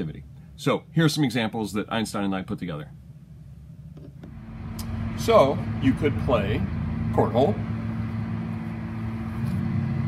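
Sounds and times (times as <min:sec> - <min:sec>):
low background rumble: 0:00.0 - 0:10.0
steady hum: 0:00.0 - 0:10.0.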